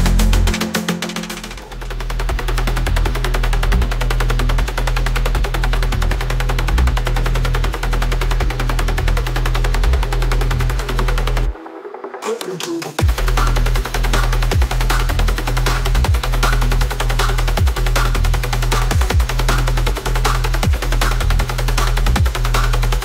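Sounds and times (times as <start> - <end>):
dark techno track: 0.0 - 23.0.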